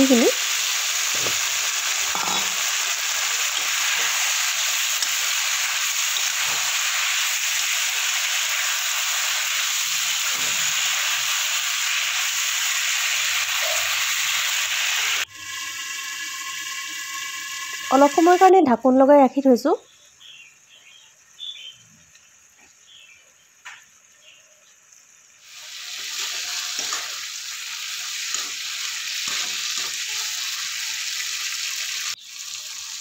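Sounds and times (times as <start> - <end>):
vegetables sizzling in oil: 0.0 - 33.0.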